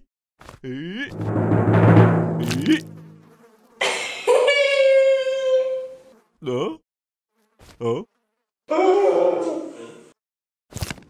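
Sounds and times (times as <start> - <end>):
fly buzzing: 2.4 - 4.3, 5.6 - 6.4, 7.3 - 8.5.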